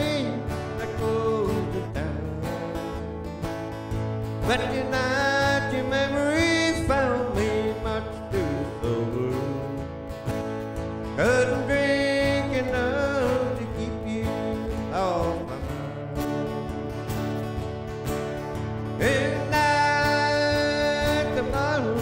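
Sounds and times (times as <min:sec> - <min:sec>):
man singing: 0:00.0 - 0:03.2, 0:04.4 - 0:10.0, 0:11.1 - 0:16.2, 0:18.9 - 0:22.0
acoustic guitars strumming: 0:00.0 - 0:22.0.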